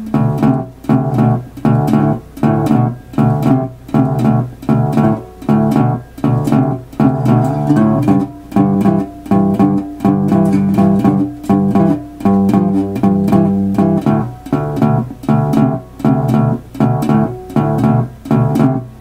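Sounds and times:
slide guitar fingerstyle shuffle: 0.0s - 19.0s.

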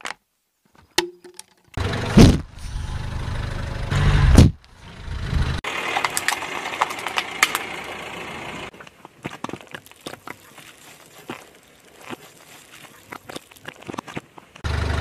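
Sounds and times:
car tyre rolling on asphalt: 4.6s - 15.0s.

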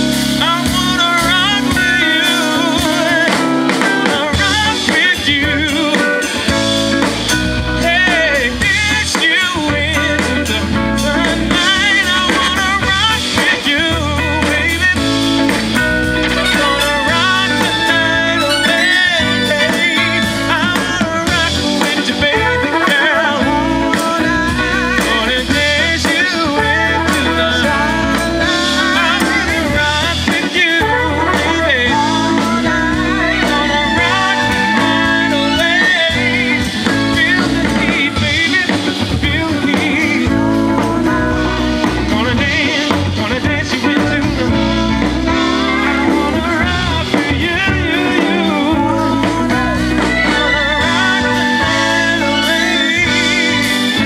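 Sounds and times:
electric guitar bending notes: 0.0s - 54.0s
live band playing: 0.0s - 54.0s
low bass line: 0.0s - 54.0s
man singing into microphone: 0.0s - 54.0s.

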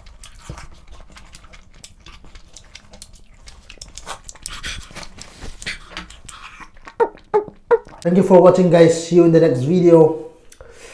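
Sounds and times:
person panting in breathy huffs: 10.6s - 10.9s.

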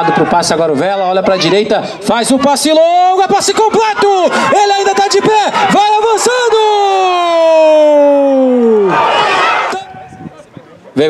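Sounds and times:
man shouting celebratory: 0.0s - 10.2s.

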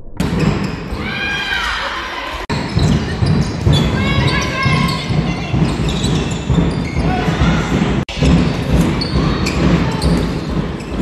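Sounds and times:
ball bouncing on hall floor: 2.5s - 11.0s.

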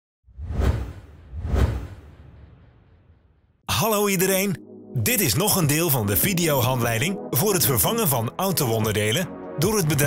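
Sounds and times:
whoosh sound effects: 0.3s - 3.3s.

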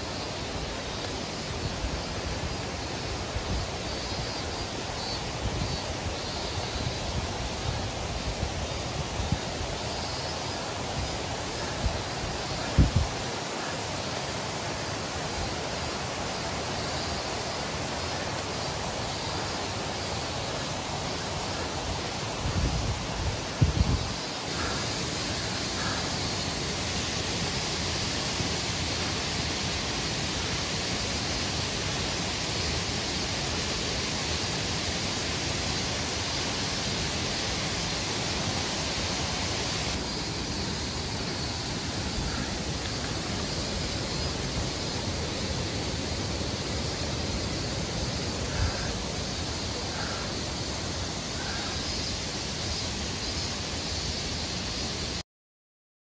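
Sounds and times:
stream rushing over rocks: 0.0s - 55.2s.

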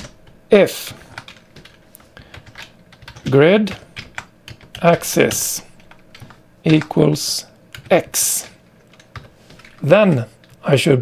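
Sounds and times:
computer keyboard typing: 0.0s - 10.6s.

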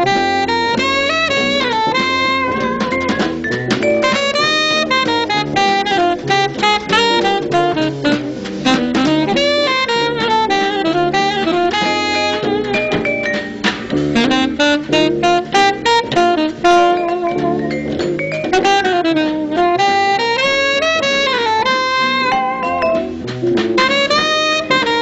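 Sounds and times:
alto saxophone melody: 0.0s - 3.2s, 3.8s - 25.0s
jazz combo playing: 0.0s - 25.0s.

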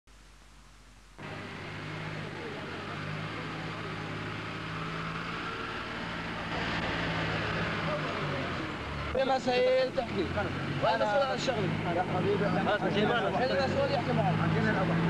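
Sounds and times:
faint low electrical hum: 0.1s - 1.3s.

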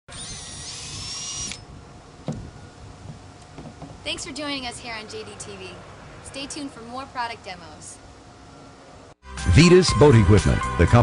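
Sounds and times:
electric motor whine: 0.1s - 1.7s.

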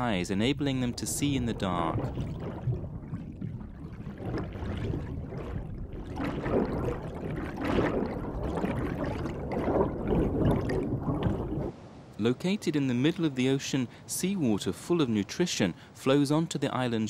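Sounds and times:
underwater churning and gurgling: 0.0s - 11.7s.

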